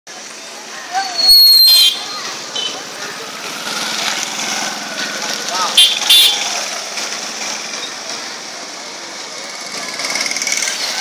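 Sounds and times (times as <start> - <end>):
people's voices: 0.1 - 11.0
loud shrill high tone: 1.0 - 2.1.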